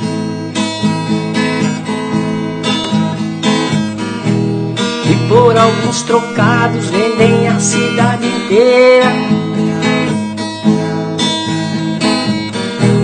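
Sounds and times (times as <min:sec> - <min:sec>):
acoustic guitar strumming: 0:00.0 - 0:13.0
person singing: 0:05.0 - 0:11.2.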